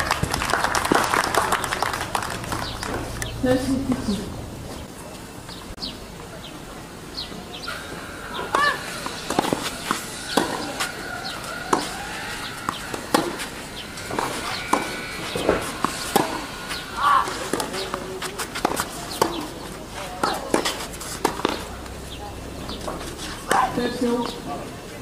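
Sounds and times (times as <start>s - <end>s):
tennis ball struck by rackets: 7.7s - 21.9s, 22.6s - 24.3s.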